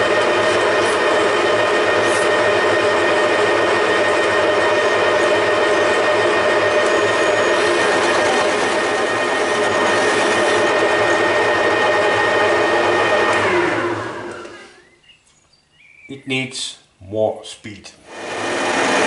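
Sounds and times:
metal lathe cutting: 0:00.0 - 0:14.8, 0:18.1 - 0:19.0
motor whine: 0:00.0 - 0:15.1, 0:18.0 - 0:19.0.

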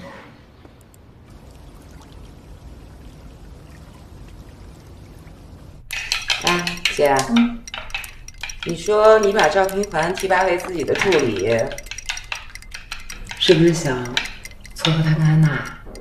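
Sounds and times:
dishes and utensils clattering: 0:05.9 - 0:16.0.

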